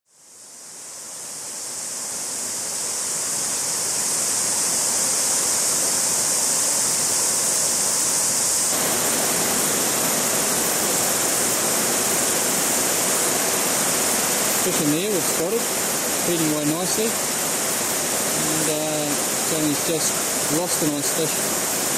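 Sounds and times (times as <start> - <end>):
stream rushing over rocks: 0.2 - 21.9.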